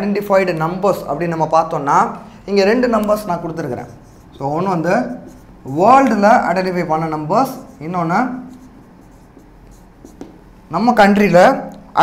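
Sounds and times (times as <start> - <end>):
man talking: 0.0 - 8.5
marker pen scratching on whiteboard: 2.8 - 10.4.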